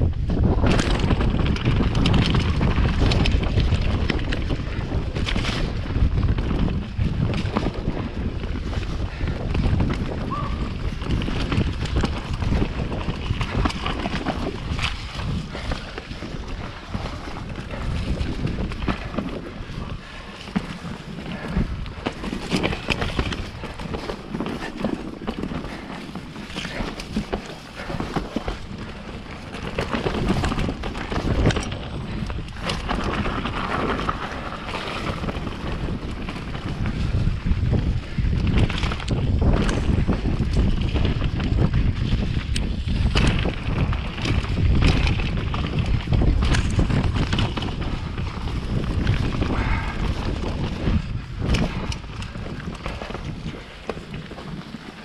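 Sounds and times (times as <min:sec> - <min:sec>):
bike knocking and rattling: 0:00.0 - 0:55.0
bike tyres rolling on dirt: 0:00.0 - 0:55.0
wind buffeting microphone: 0:00.0 - 0:55.0.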